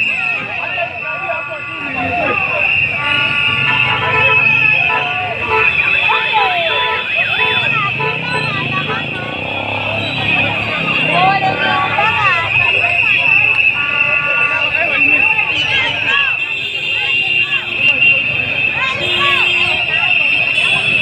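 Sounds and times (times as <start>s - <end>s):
crowd shouting: 0.0s - 21.0s
vehicle horn toots: 0.0s - 21.0s.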